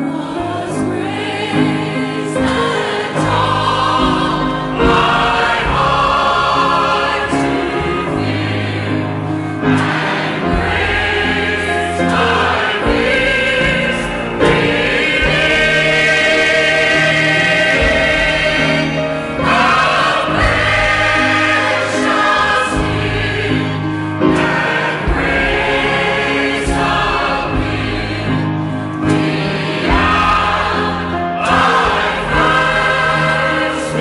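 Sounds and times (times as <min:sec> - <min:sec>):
choir singing a hymn: 0:00.0 - 0:34.0.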